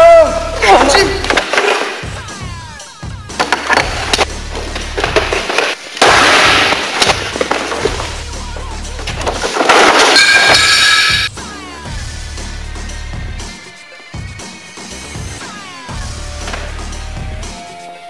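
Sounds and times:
film soundtrack music with low bass: 2.0 - 5.6, 11.3 - 18.0
loud crashing bursts: 3.3 - 8.3.

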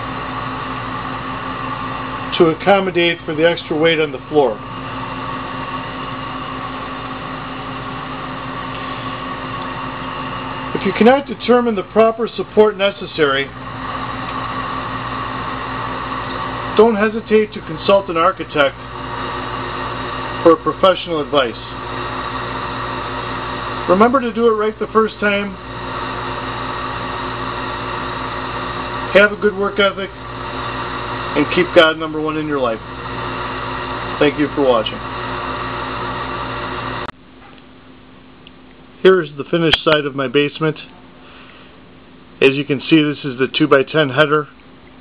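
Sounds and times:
machine hum: 0.0 - 45.0.

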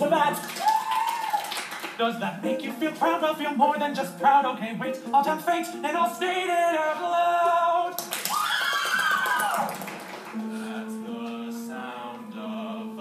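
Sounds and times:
musical theatre singing: 1.9 - 8.1, 10.3 - 13.0
sustained low note: 10.4 - 12.9.

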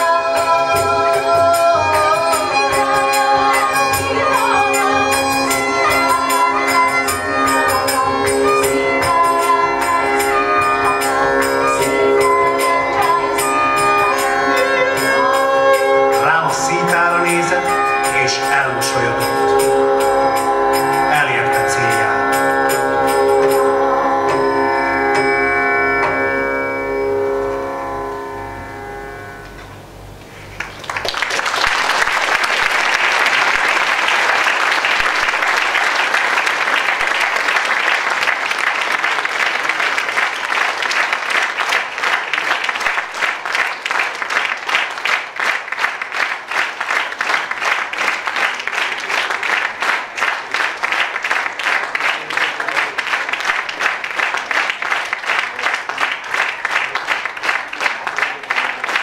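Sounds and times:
violin holding note: 16.0 - 24.6
audience applause: 16.1 - 22.6, 30.4 - 59.0.

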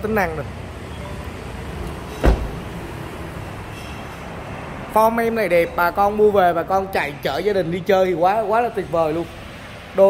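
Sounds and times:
car door shutting: 2.1 - 2.7.

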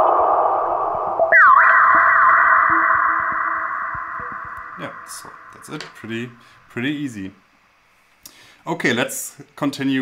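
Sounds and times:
synthesizer arpeggio with filter sweep: 1.3 - 5.7.

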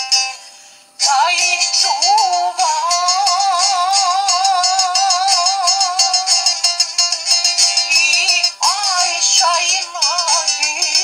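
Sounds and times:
ornamented vocal-style melody: 1.0 - 11.0.

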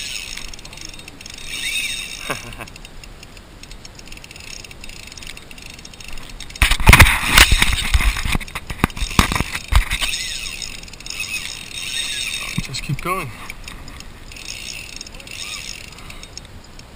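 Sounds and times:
soft ticking: 0.0 - 6.6, 8.4 - 16.9
fishing reel clicking and rattling: 0.0 - 16.9.

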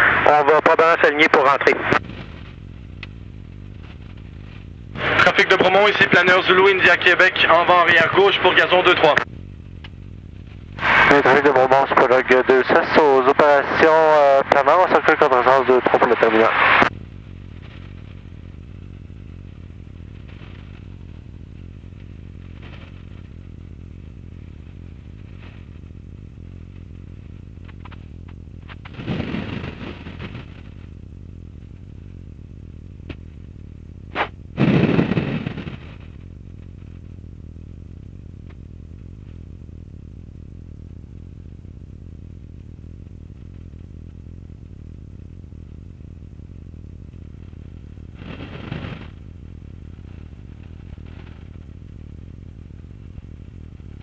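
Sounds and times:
crackly noise bursts: 0.0 - 54.0
light aircraft engine drone: 0.0 - 54.0.

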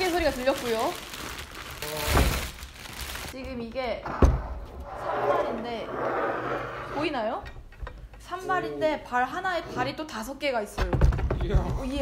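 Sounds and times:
plastic wrap crinkling: 0.0 - 3.4.

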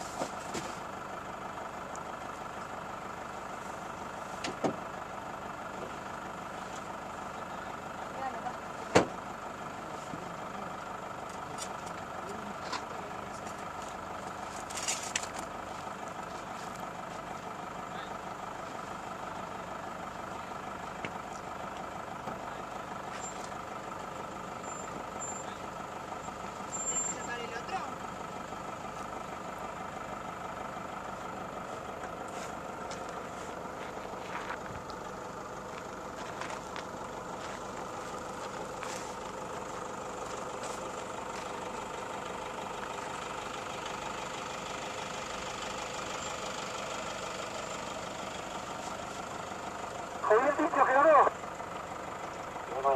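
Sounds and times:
vehicle engine idling: 0.0 - 52.9.

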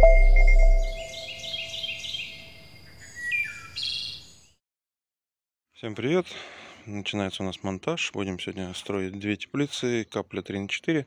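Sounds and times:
birds chirping and trilling: 0.1 - 4.6.

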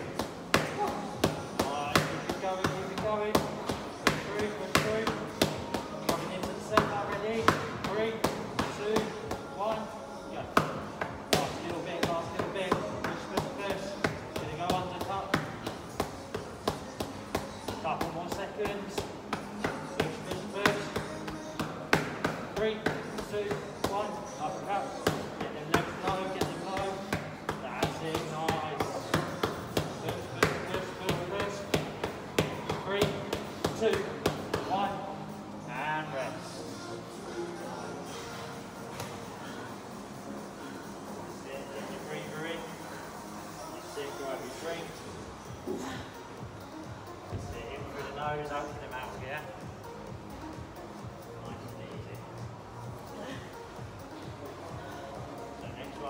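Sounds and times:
music with singing: 0.1 - 56.0.

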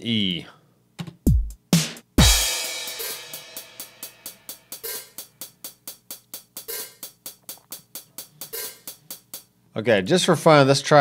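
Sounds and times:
drum machine hi-hat ticks: 1.0 - 9.5
deep kick drum: 1.3 - 1.6
crash cymbal: 2.2 - 5.2.

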